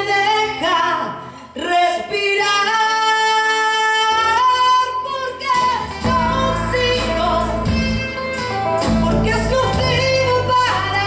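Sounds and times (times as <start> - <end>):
acoustic guitar: 0.0 - 11.0
electric bass: 5.8 - 11.0.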